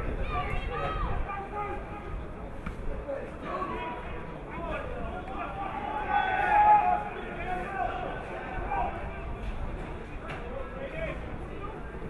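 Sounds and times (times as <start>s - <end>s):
men shouting and calling: 3.7s - 9.2s.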